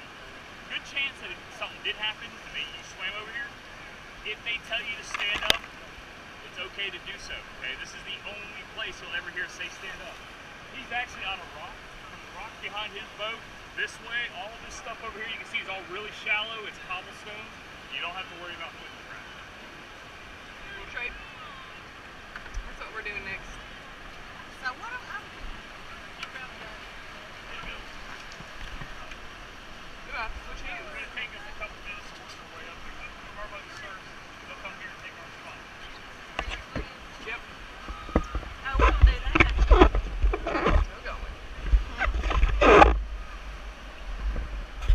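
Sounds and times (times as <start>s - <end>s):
rushing whitewater: 0.0s - 44.9s
distant shouting voices: 19.0s - 27.9s
wind buffeting microphone: 37.7s - 44.9s.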